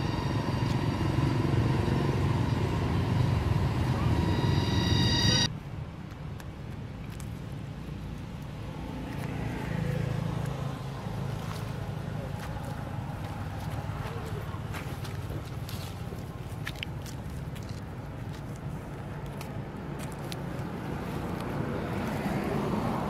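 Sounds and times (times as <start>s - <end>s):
engine whine: 0.0s - 5.5s
vehicle engine rumble: 0.0s - 23.0s.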